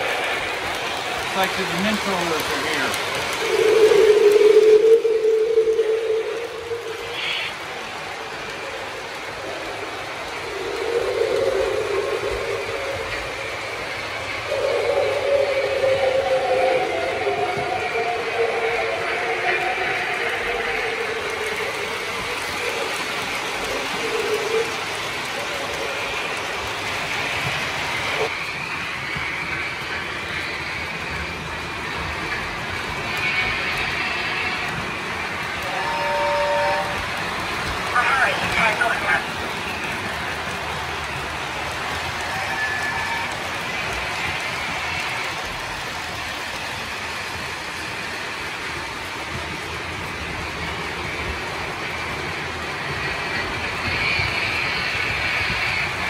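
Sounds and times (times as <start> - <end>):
model train wheels rumbling: 0.0 - 56.0.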